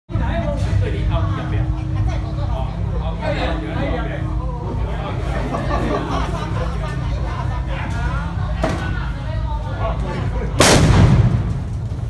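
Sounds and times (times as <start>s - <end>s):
firework blast: 10.6s - 12.0s.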